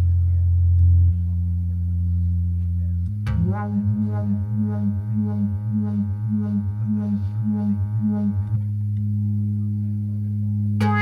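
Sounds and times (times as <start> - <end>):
low synthesizer drone: 0.0 - 11.0
pulsing synthesizer pattern: 3.3 - 8.6.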